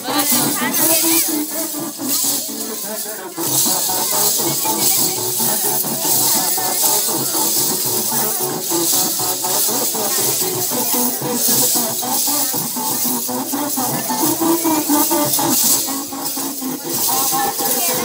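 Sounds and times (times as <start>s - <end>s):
jingle instruments jangling: 0.0s - 18.0s.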